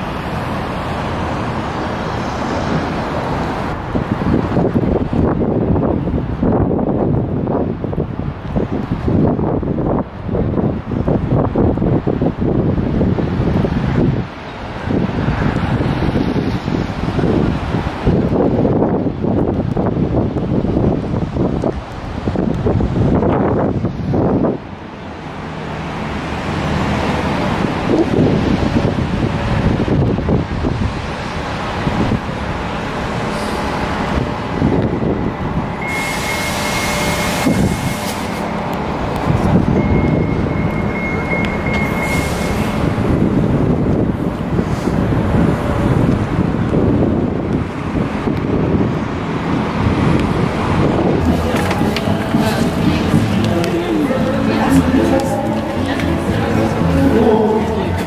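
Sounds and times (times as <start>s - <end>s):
city street traffic: 0.0s - 58.0s
wind gusting on microphone: 0.0s - 58.0s
thin high whine: 35.8s - 38.2s.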